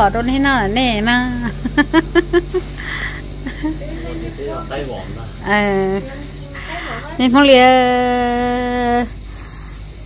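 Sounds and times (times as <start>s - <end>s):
crickets droning: 0.0s - 10.0s.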